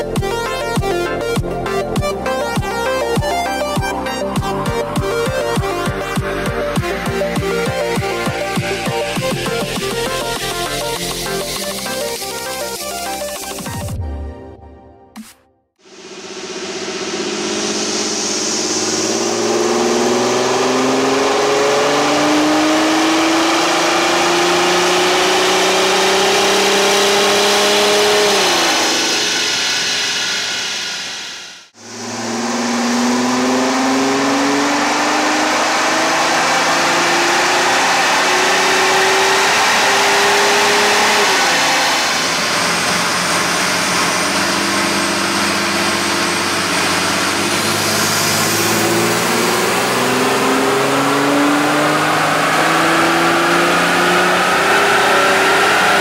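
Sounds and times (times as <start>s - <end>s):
diesel engine revving on dynamometer: 15.8s - 56.0s.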